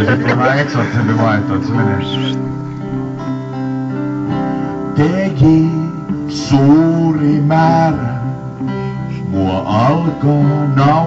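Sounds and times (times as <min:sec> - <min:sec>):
acoustic guitar: 0:00.0 - 0:11.0
keyboard backing: 0:00.0 - 0:11.0.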